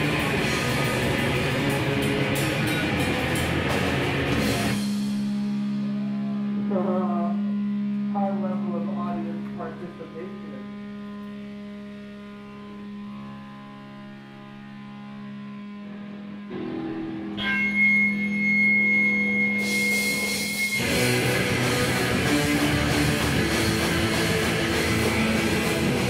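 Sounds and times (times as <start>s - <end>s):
distorted electric guitar drone: 0.0s - 26.0s
high feedback whine: 0.0s - 26.0s
cymbals crashing: 2.4s - 6.7s, 17.4s - 26.0s.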